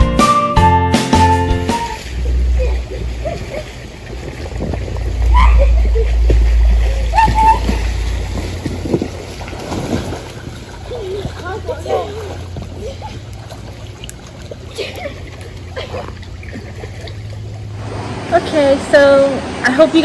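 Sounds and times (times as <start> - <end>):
background music: 0.0 - 2.1
water splashing in a pool: 1.6 - 20.0
low rumble: 2.0 - 20.0.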